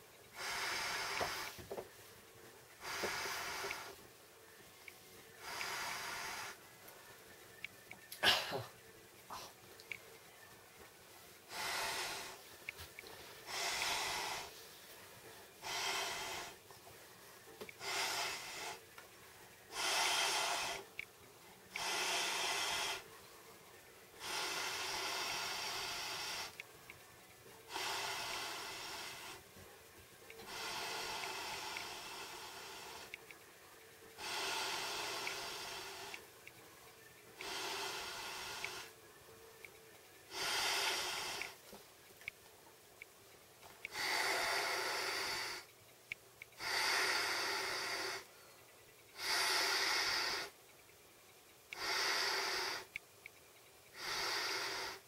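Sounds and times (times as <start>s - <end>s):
breath blowing into air bed valve: 0.4s - 1.6s, 15.6s - 16.6s, 19.7s - 20.9s, 21.7s - 23.1s, 24.2s - 26.6s, 30.4s - 33.2s, 34.2s - 36.2s, 37.4s - 39.0s, 40.3s - 41.6s, 43.9s - 45.7s, 46.6s - 48.3s, 49.2s - 50.6s, 51.8s - 53.0s, 53.9s - 55.0s.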